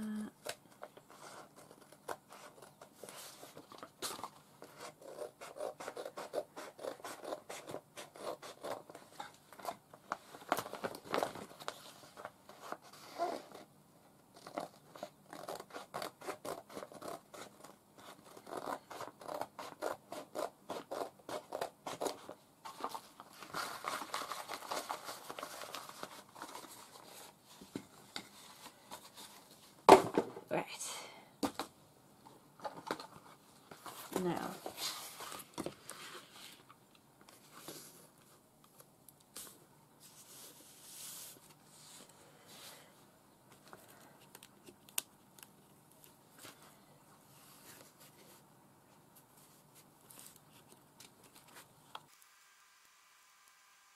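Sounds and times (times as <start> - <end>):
scissors snipping paper: 4.7 - 9.0.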